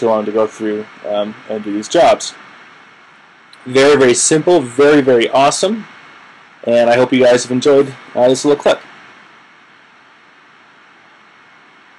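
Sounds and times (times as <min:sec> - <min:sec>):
faint microphone hiss: 0:00.0 - 0:11.9.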